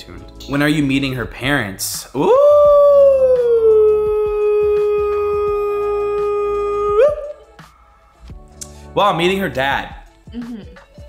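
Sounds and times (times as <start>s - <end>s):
man's drawn-out ooh: 2.2s - 7.5s.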